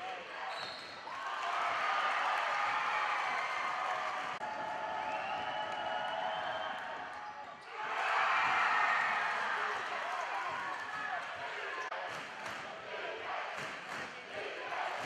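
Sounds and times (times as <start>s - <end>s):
players and spectators voices: 0.0s - 15.0s
sneakers squeaking: 0.5s - 1.0s.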